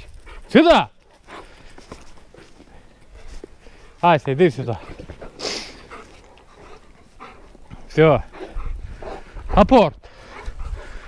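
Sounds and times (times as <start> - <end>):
dogs playing rough: 0.0 - 11.0
dog huffing: 4.6 - 11.0.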